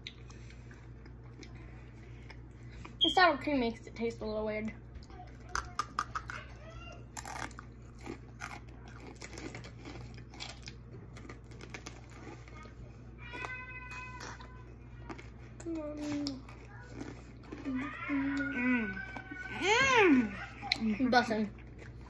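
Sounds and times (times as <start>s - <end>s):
crunching and chewing pepper: 0.0s - 3.0s, 5.0s - 22.0s
child speaking: 5.0s - 7.1s, 12.5s - 21.6s.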